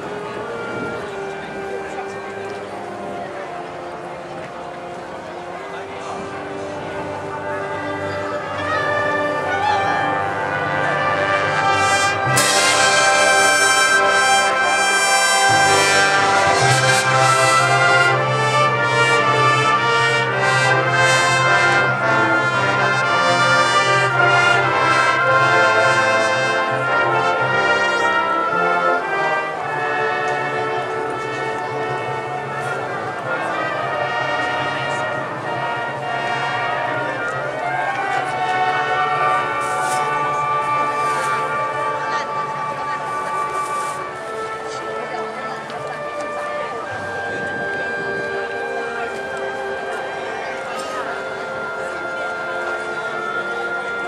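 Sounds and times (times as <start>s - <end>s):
concert band playing: 4.9s - 54.0s.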